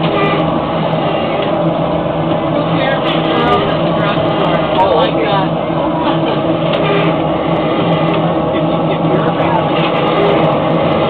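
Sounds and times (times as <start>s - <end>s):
loud mechanical hum: 0.0s - 11.0s.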